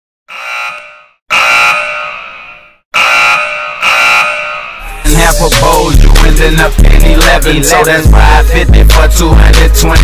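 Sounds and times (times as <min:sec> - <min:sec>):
high electronic alarm ringing: 0:00.3 - 0:05.3.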